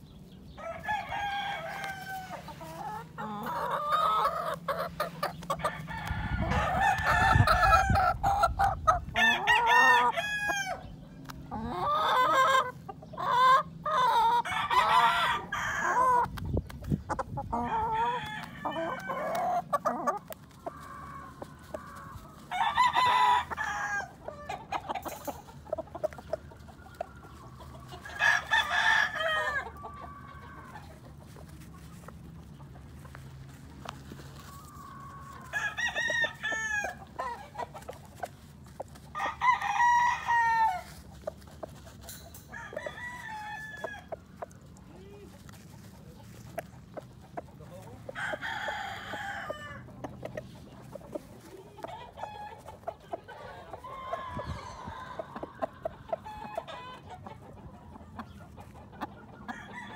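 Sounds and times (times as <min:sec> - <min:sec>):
chickens clucking: 0:00.0 - 0:59.9
roosters crowing: 0:00.0 - 0:59.9.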